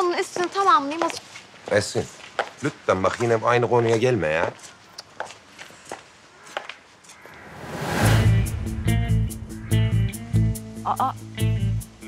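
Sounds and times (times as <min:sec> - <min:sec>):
footsteps on pavement: 0:00.1 - 0:07.2.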